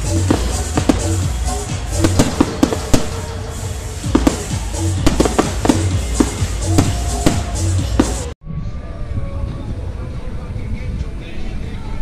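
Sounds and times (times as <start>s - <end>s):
fireworks banging: 0.0s - 8.4s
loud bass-heavy music: 0.0s - 8.4s.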